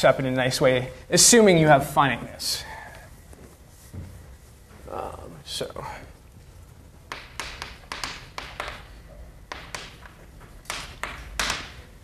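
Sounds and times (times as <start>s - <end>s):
chalk tapping and scraping on blackboard: 7.1s - 11.9s.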